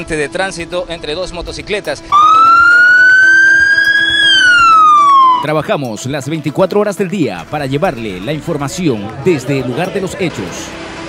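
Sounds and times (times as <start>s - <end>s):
ambulance siren wailing: 2.1s - 5.6s.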